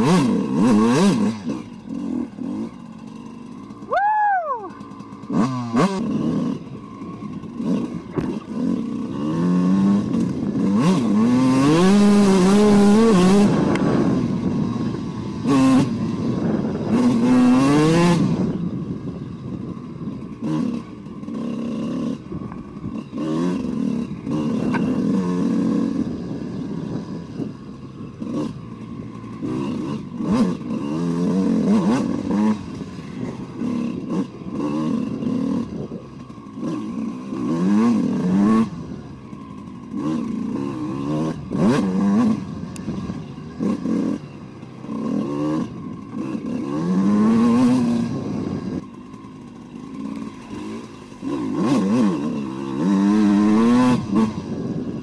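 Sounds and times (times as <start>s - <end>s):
two-stroke motorcycle engine revving: 0.0s - 55.0s.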